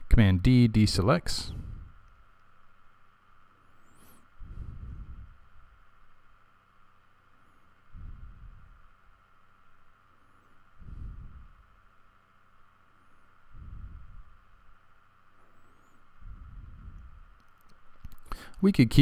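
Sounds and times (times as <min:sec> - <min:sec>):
faint steady hum: 0:00.0 - 0:19.0
person breathing: 0:01.4 - 0:02.2, 0:03.6 - 0:05.7, 0:07.3 - 0:09.0, 0:10.1 - 0:11.8, 0:13.0 - 0:17.4, 0:18.1 - 0:18.6.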